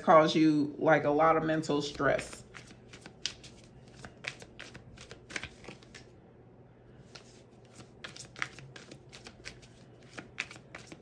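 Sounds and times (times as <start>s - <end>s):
cards being shuffled: 1.9s - 6.1s, 7.0s - 11.0s.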